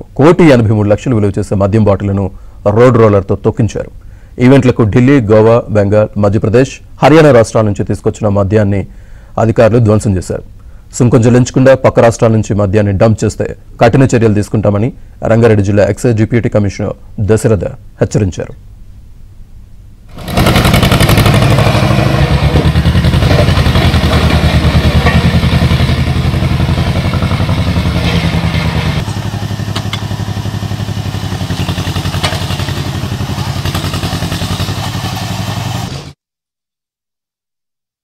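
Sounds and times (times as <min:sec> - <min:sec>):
road roller engine running: 0:20.1 - 0:36.2.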